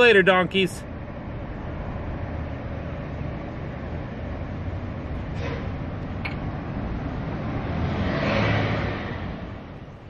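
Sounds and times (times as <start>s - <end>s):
motor vehicle passing by: 6.5s - 9.8s.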